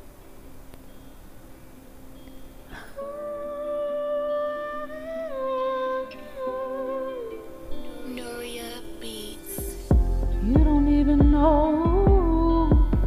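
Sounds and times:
woman humming a melody: 0:02.7 - 0:13.0
backing beat: 0:09.5 - 0:13.0.

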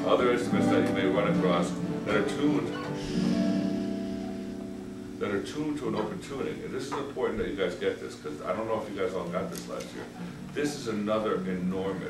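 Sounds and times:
guitar chord ringing: 0:00.0 - 0:07.1.

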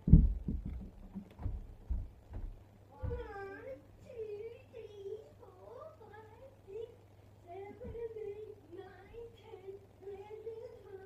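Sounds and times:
soft low thumps: 0:00.0 - 0:03.4.

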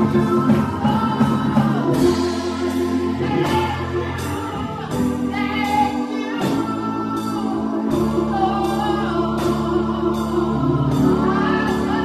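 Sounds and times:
electric keyboard: 0:00.0 - 0:12.0
gospel choir singing: 0:00.0 - 0:12.0
woman singing lead: 0:00.0 - 0:12.0.

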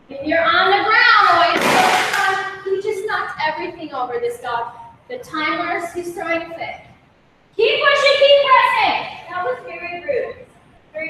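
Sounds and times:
woman talking: 0:00.1 - 0:06.8, 0:07.6 - 0:10.4.

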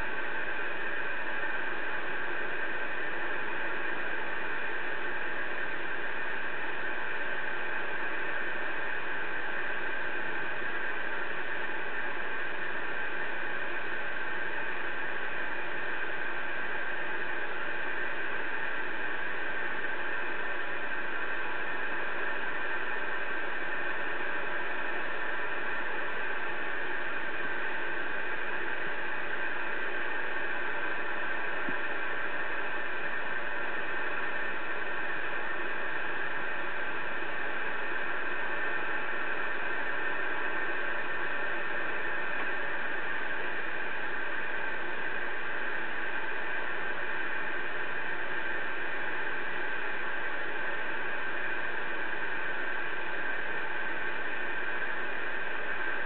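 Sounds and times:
radio static hiss: 0:00.0 - 0:56.0.

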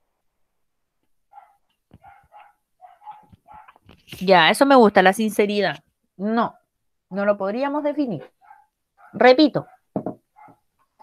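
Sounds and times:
dog barking faintly: 0:01.3 - 0:03.8, 0:08.4 - 0:10.7.

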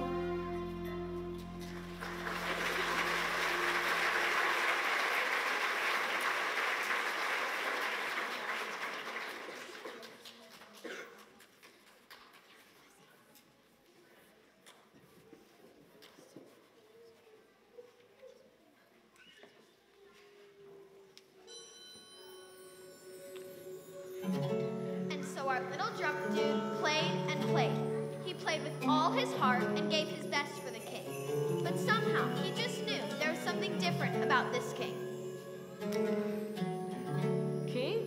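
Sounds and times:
audience applause: 0:01.5 - 0:10.9.

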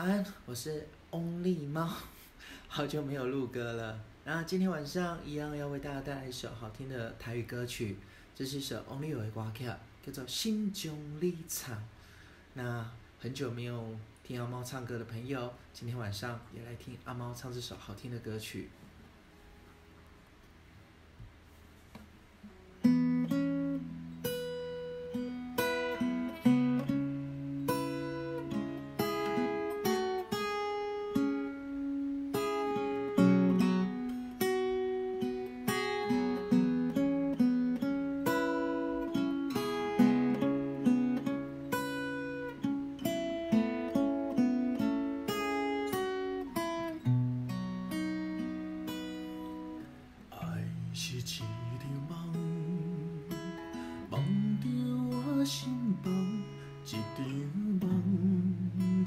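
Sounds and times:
acoustic guitar playing: 0:21.5 - 0:59.0.

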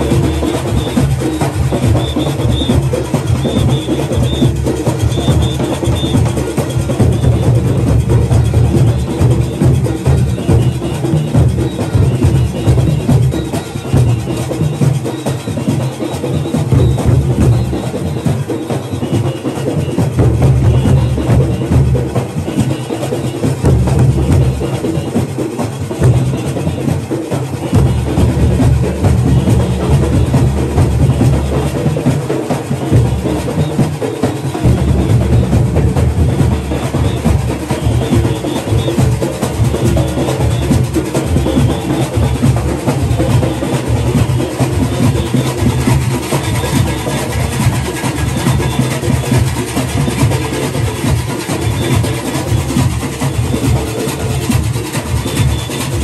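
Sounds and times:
barrel drums pounding: 0:00.0 - 0:56.0.

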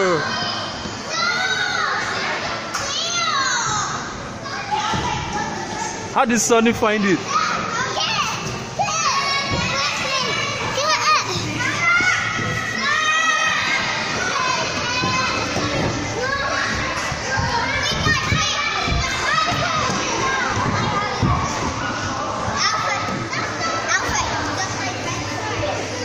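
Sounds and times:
children shouting and shrieking: 0:00.0 - 0:06.1, 0:06.9 - 0:26.0.

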